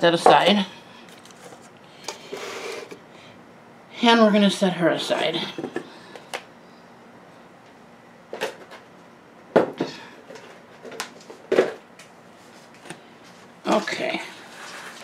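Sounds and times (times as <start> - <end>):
scraping rustle: 14.3 - 15.0.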